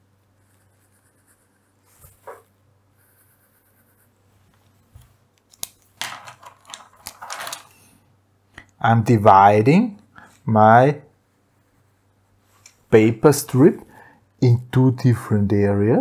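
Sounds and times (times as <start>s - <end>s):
pen scratching on paper: 0.4s - 2.4s, 3.0s - 4.2s.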